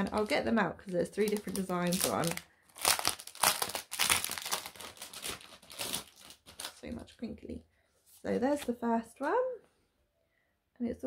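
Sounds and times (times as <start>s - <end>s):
plastic wrapping crinkling: 0.0s - 7.1s.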